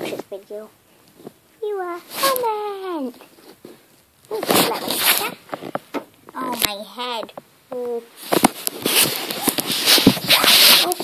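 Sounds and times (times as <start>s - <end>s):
camera handling rustling: 8.3s - 11.0s.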